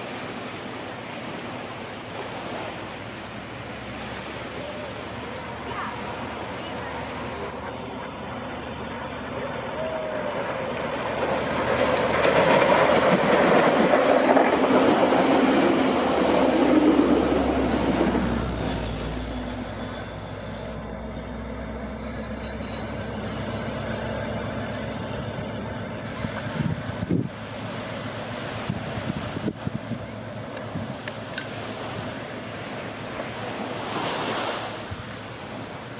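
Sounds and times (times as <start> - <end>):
train wheels rumbling on rails: 0.0 - 35.9
thin high whine: 18.3 - 27.3.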